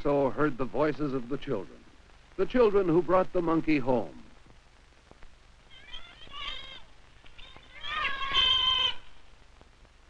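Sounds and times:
children calling out: 0:05.7 - 0:09.2.

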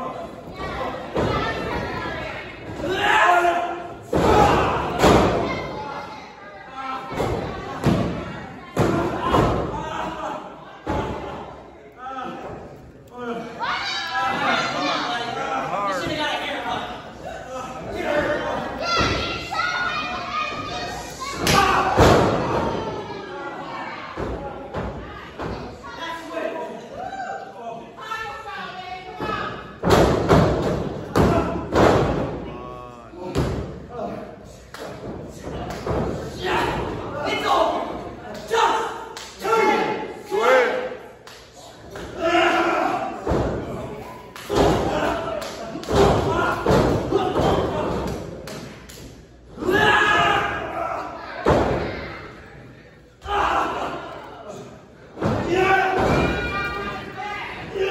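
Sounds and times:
voices shouting: 0:13.2 - 0:24.2, 0:53.2 - 0:54.6.

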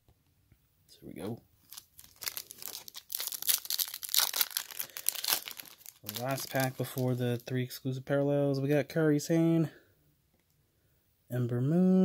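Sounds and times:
wrapper tearing and crinkling: 0:01.6 - 0:07.4.

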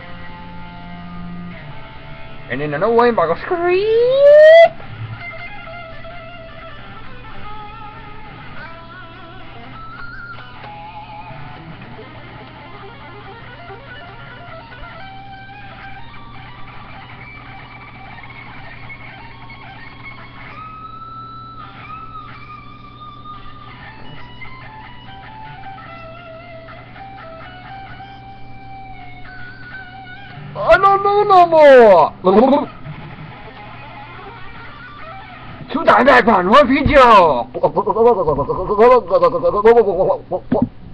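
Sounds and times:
electric guitar riffs: 0:00.0 - 0:40.9
steady low hum: 0:00.0 - 0:40.9.

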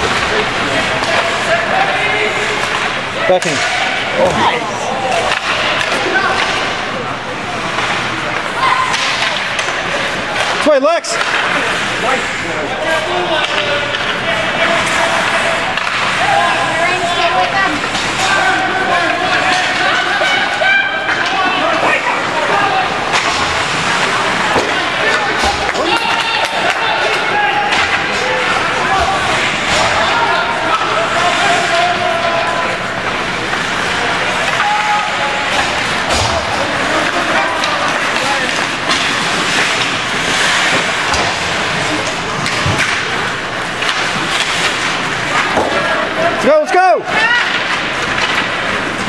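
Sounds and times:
sticks and puck clacking on ice: 0:00.0 - 0:06.8, 0:07.6 - 0:46.4, 0:47.0 - 0:49.0
spectators talking and calling out: 0:00.0 - 0:49.0.

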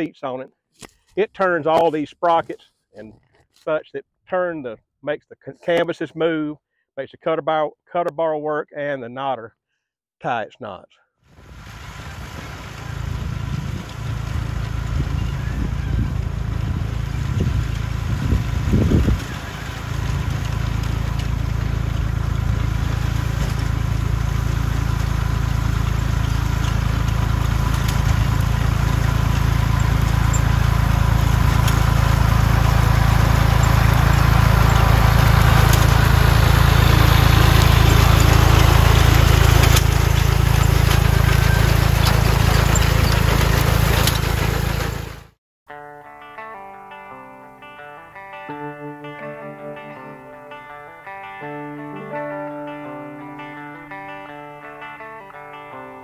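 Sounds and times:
tractor engine running under load: 0:11.5 - 0:45.4.

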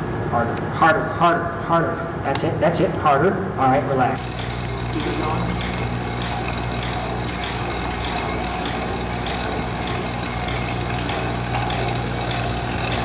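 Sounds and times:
steady low hum: 0:00.0 - 0:13.0
exercise bike flywheel whirring: 0:04.2 - 0:13.0.

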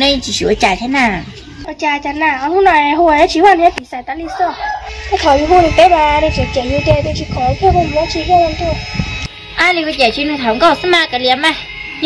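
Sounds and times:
young woman speaking: 0:09.6 - 0:11.6.

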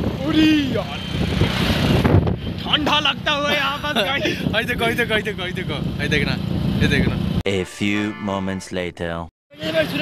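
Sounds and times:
wind buffeting microphone: 0:00.0 - 0:02.8
motorcycle engine rumble: 0:00.0 - 0:07.4.

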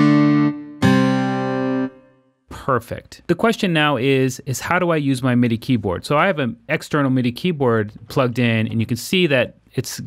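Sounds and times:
strummed acoustic guitar chords: 0:00.0 - 0:02.2.

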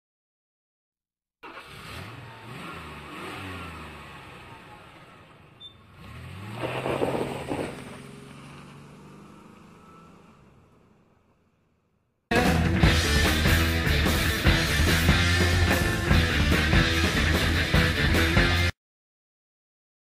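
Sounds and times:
vehicle engine revving: 0:01.4 - 0:11.4, 0:12.5 - 0:18.7.

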